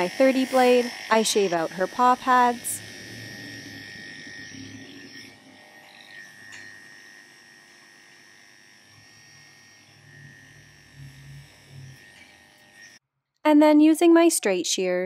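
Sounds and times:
electric clipper whining: 0.0 - 13.0.

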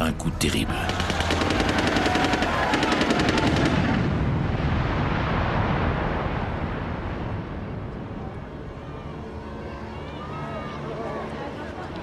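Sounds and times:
rapid automatic gunfire: 0.8 - 4.0
low rumble: 3.5 - 9.5.

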